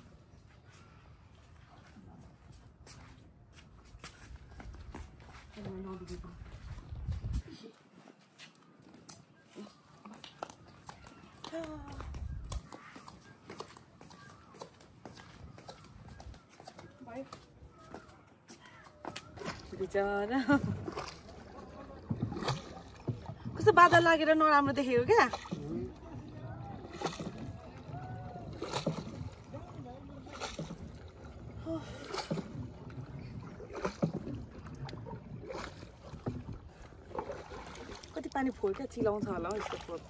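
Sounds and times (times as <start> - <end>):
low water and wind noise: 0.0 - 8.0, 9.0 - 40.0
faint outdoor background: 0.0 - 40.0
paddle strokes in water: 8.3 - 40.0.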